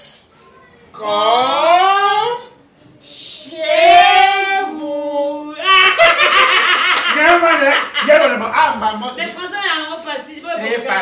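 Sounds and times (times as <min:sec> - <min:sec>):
man and woman laughing: 0:05.6 - 0:08.5.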